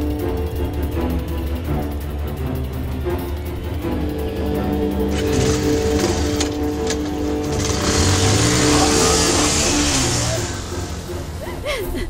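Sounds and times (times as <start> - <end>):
film music with held notes: 0.0 - 12.0
motorcycle engine revving: 4.3 - 11.4.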